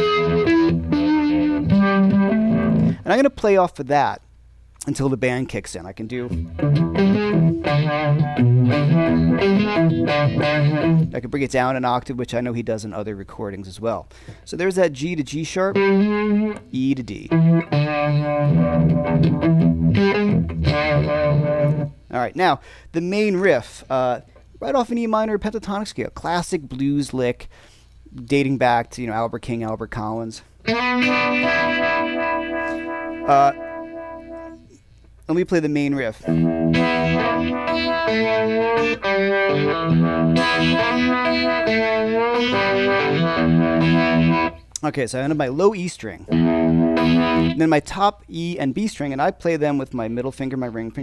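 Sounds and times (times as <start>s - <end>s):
overdriven electric guitar: 0.0s - 3.0s, 6.2s - 11.1s, 15.7s - 16.7s, 17.3s - 22.0s, 30.6s - 34.8s, 36.2s - 44.7s, 46.3s - 47.6s.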